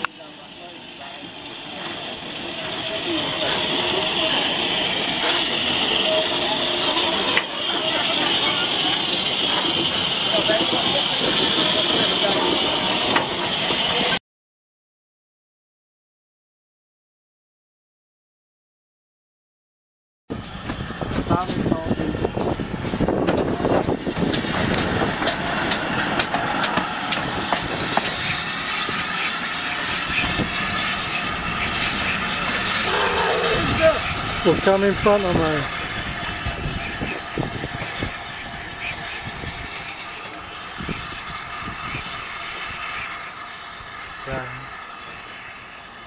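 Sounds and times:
hiss of escaping steam: 0:00.0 - 0:14.2, 0:22.9 - 0:46.0
wheels clanking over rail joints: 0:01.1 - 0:14.1, 0:20.5 - 0:32.9.

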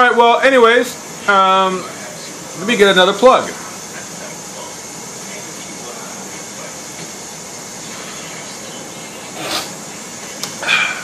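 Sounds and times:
steady background hiss: 0:00.0 - 0:11.0
breathy exhales: 0:10.6 - 0:11.0.

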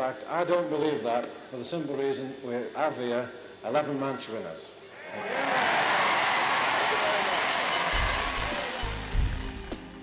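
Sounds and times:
crowd cheering and applauding: 0:05.0 - 0:10.0
background music with steady beat: 0:07.9 - 0:10.0.

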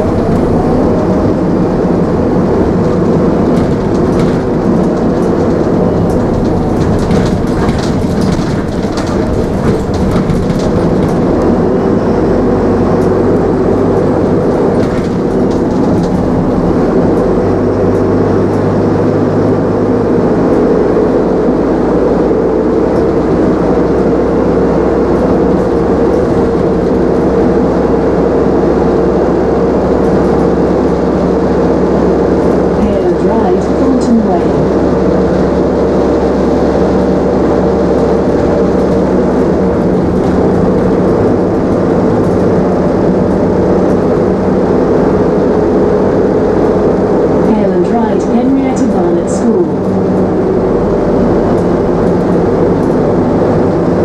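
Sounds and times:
bus engine and road noise: 0:00.0 - 0:54.0.

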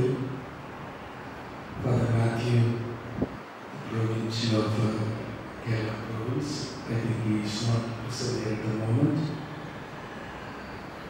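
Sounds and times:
man chanting a prayer: 0:03.8 - 0:09.5.

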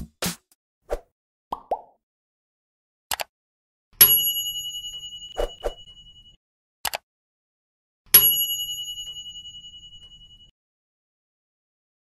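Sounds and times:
cartoon pop blips falling in pitch: 0:01.5 - 0:02.0.

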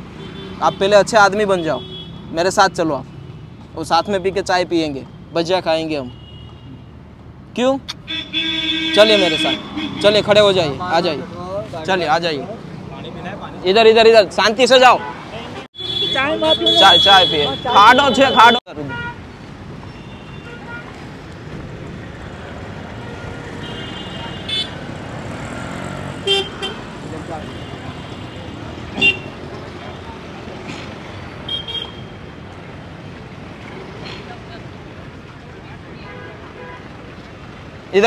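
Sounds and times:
street traffic noise: 0:00.0 - 0:38.0
vehicle horn toots: 0:08.0 - 0:10.3, 0:15.8 - 0:19.2, 0:23.0 - 0:24.8, 0:26.2 - 0:26.8, 0:27.5 - 0:29.4, 0:31.5 - 0:32.1.

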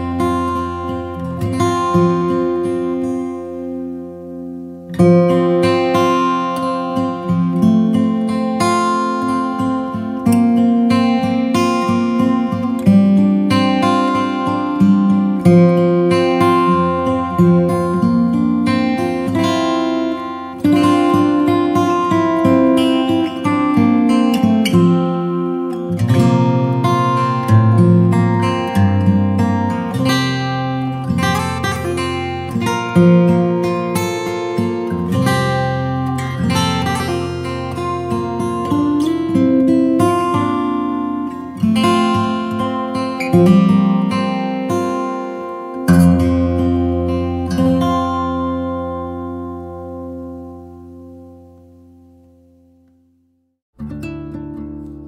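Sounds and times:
acoustic guitar playing: 0:00.0 - 0:55.0.

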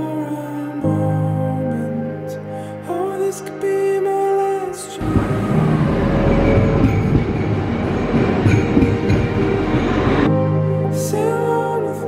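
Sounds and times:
train running on rails: 0:05.0 - 0:10.3.

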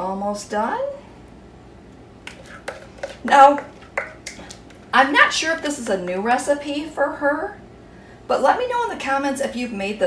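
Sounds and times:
faint room hum: 0:00.0 - 0:10.0
measuring cup tapping metal tin: 0:02.3 - 0:04.8.

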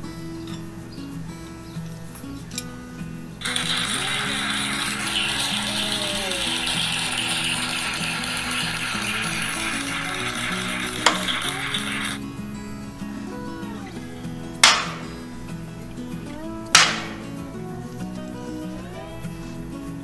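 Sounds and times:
background music: 0:00.0 - 0:20.0
knives striking target board: 0:14.6 - 0:15.1, 0:16.8 - 0:17.3.

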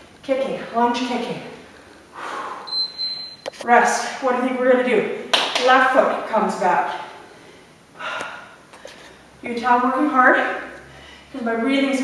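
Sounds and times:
woman breathing hard: 0:01.8 - 0:02.8, 0:07.3 - 0:09.2
woman gasping breath: 0:02.1 - 0:02.7, 0:07.4 - 0:09.0.

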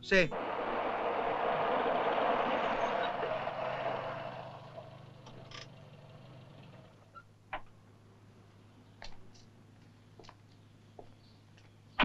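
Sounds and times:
engine running: 0:00.3 - 0:07.2.

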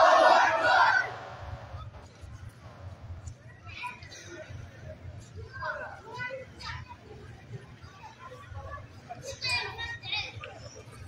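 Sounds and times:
adults and children talking: 0:03.0 - 0:11.0.

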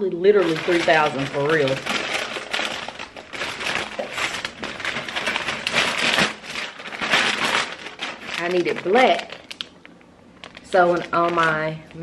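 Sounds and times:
packaging crumpling: 0:00.2 - 0:12.0.

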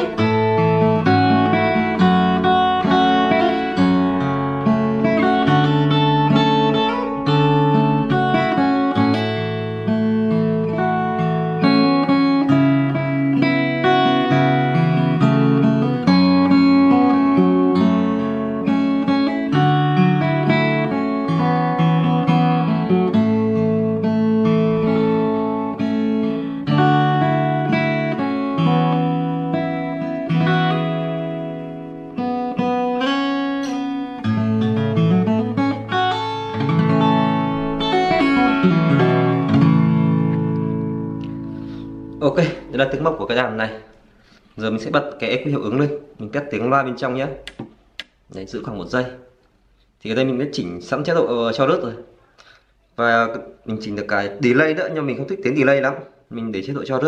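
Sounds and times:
fingerstyle acoustic guitar: 0:00.0 - 0:45.7.

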